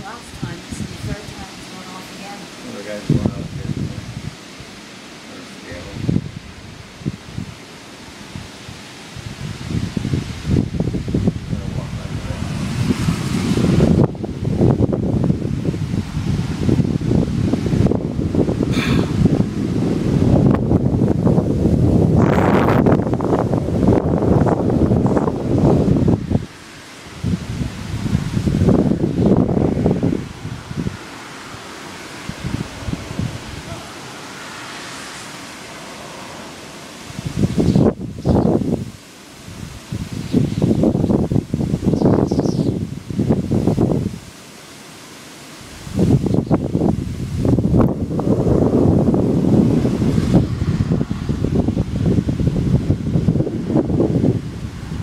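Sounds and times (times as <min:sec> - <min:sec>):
wind gusting on microphone: 0:00.0 - 0:55.0.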